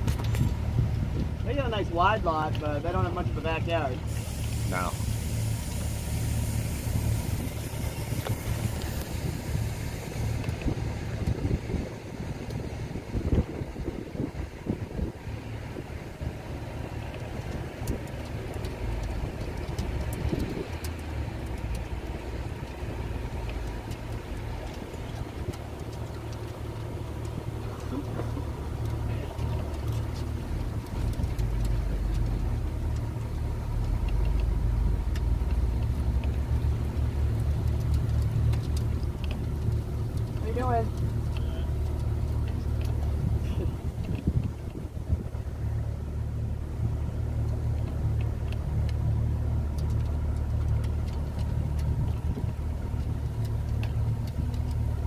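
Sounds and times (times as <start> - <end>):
boat motor idling: 0.0 - 55.0.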